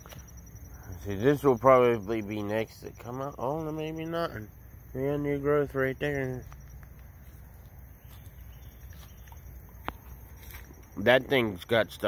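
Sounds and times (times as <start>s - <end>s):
footsteps in dry leaves: 6.4s - 10.8s.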